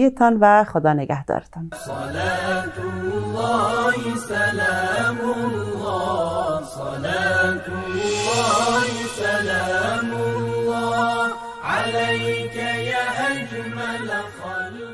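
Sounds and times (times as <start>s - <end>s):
person chanting: 1.7s - 14.9s
sustained drone: 5.5s - 13.8s.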